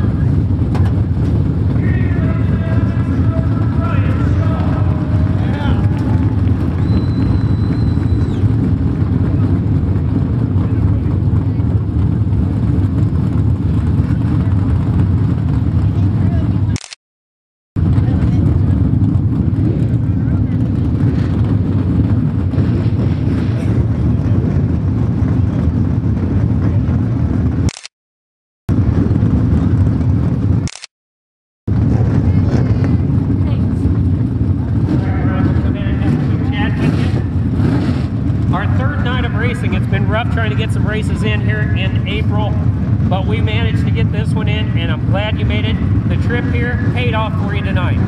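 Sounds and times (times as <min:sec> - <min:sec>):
low engine rumble: 0:00.0 - 0:17.0, 0:17.8 - 0:27.8, 0:28.7 - 0:30.9, 0:31.7 - 0:48.0
voices: 0:01.6 - 0:09.7, 0:32.2 - 0:37.5, 0:38.4 - 0:48.0.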